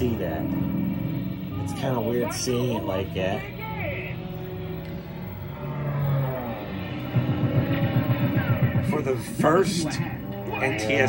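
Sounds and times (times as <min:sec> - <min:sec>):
low rumbling drone: 0:00.0 - 0:11.0
rhythmic cartoon music: 0:00.0 - 0:11.0
steady buzz: 0:00.0 - 0:11.0.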